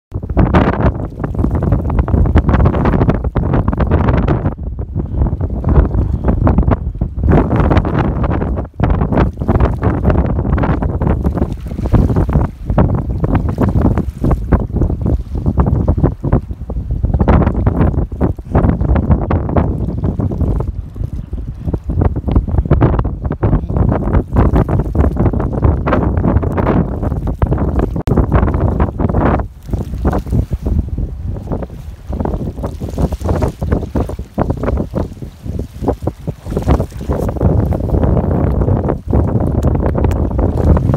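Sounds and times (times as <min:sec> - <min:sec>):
wind buffeting microphone: 0:00.1 - 0:40.9.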